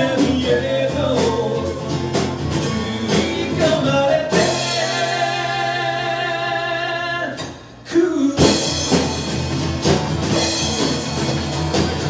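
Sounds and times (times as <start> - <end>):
acoustic guitar: 0.0 - 12.0
drum hit: 8.4 - 12.0.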